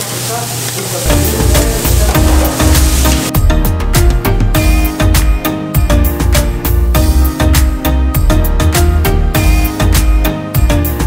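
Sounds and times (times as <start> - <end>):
food sizzling on griddle: 0.0 - 3.3
music with heavy bass: 1.1 - 11.0.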